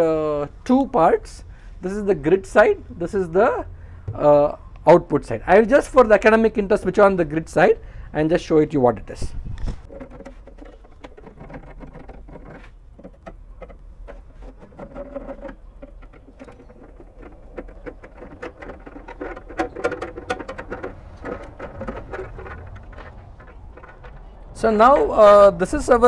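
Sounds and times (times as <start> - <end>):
screwdriver clicking and scraping: 9.8 - 24.3.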